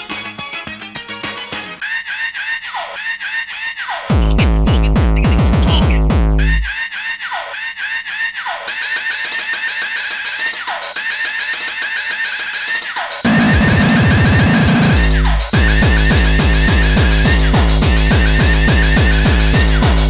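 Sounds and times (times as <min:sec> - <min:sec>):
heavy distorted kick drums: 0:04.1 - 0:06.7, 0:13.2 - 0:20.0.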